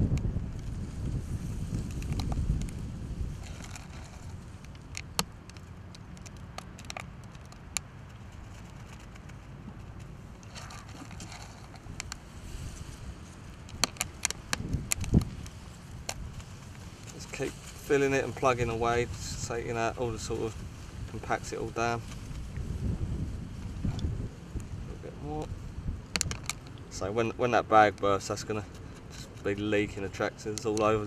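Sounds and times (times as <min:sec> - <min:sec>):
pellets clicking in plastic bag: 0:13.6 - 0:16.2.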